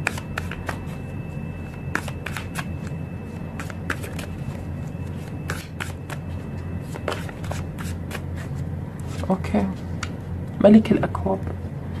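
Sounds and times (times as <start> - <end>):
cards being shuffled: 0.0 - 1.0, 1.9 - 2.9, 3.5 - 9.3
low hum: 0.0 - 12.0.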